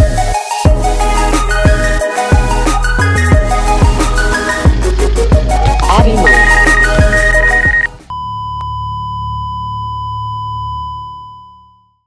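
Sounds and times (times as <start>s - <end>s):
background music with heavy beat: 0.0s - 8.1s
long steady electronic beep: 6.2s - 12.0s.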